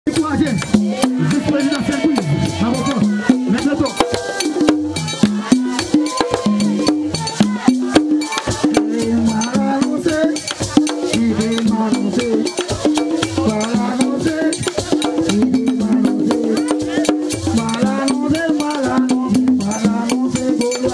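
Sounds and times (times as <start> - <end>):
man singing into microphone: 0.1 - 4.4, 5.9 - 20.9
drums and hand percussion: 0.1 - 20.9.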